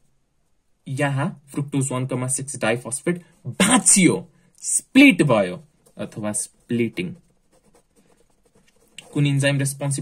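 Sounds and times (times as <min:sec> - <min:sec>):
pen writing on paper: 0:06.6 - 0:09.3.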